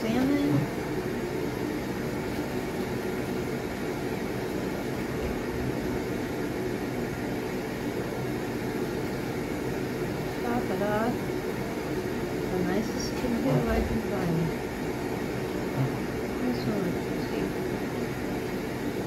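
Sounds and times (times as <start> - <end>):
low room hum with hiss: 0.0 - 19.0.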